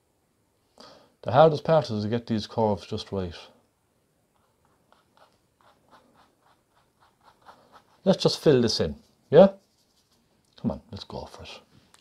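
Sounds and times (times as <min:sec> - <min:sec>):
paintbrush strokes on canvas: 0:04.3 - 0:10.4.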